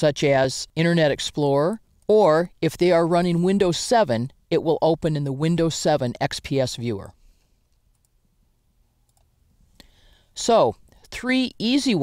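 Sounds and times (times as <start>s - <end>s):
faint computer mouse clicks: 7.7s - 8.2s.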